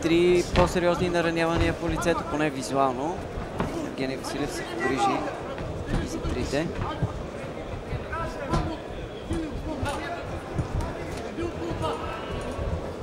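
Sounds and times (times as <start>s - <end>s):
crowd hubbub: 0.0s - 13.0s.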